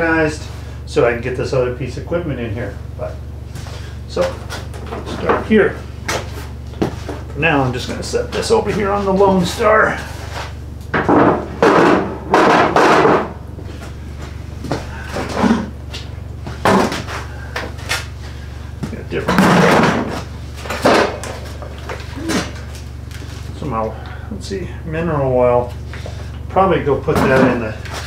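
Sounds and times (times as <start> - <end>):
steady low hum: 0.0 - 28.0
objects knocking and clattering: 10.9 - 13.4, 16.6 - 17.1, 19.2 - 22.5.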